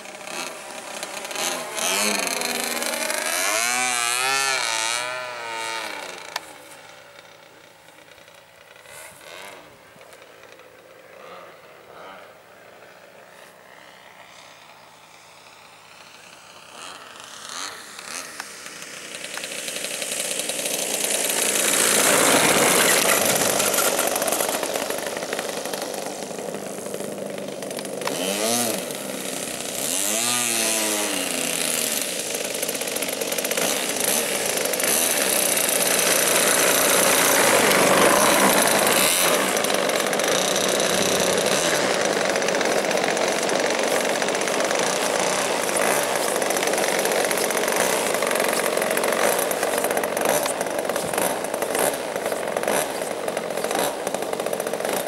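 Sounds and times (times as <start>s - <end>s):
model plane engine: 0.0s - 55.0s.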